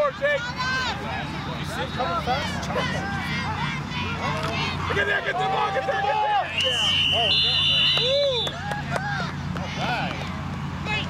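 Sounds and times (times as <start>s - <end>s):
players and spectators shouting: 0.0s - 11.0s
higher whistle: 6.5s - 8.6s
referee's whistle blast: 6.5s - 8.6s.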